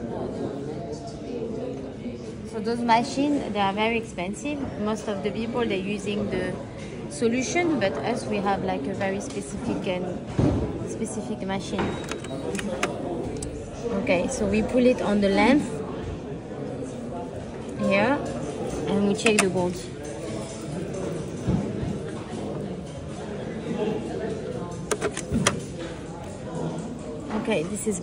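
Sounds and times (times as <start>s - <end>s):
background chatter: 0.0s - 28.0s
murmur of background voices: 0.0s - 28.0s
objects clicking and knocking: 11.8s - 13.5s, 24.7s - 25.9s.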